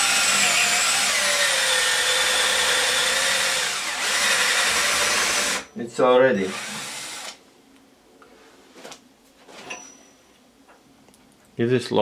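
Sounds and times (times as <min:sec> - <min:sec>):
drill cutting into steel: 0:00.0 - 0:05.7, 0:06.4 - 0:07.4.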